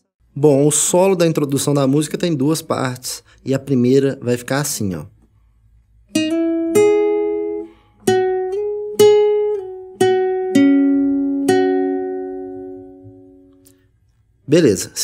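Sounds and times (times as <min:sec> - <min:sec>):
classical guitar melody: 0:06.1 - 0:13.8.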